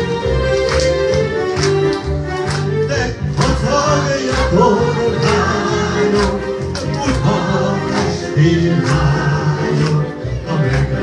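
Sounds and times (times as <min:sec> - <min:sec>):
electronic keyboard accompaniment: 0:00.0 - 0:11.0.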